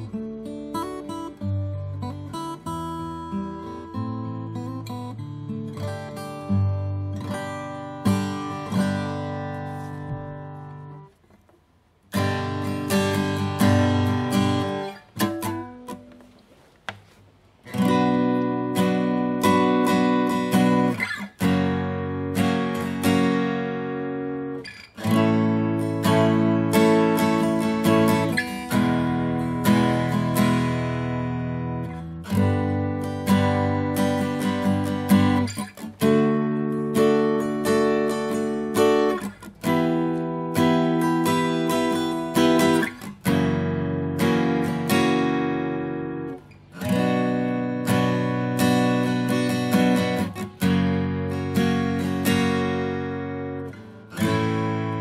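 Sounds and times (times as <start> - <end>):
acoustic guitar strumming chords: 0.0 - 55.0.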